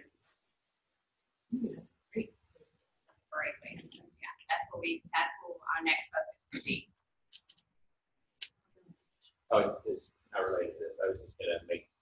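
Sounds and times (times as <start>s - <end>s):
people talking: 1.5s - 1.8s, 3.4s - 6.8s, 9.5s - 11.8s.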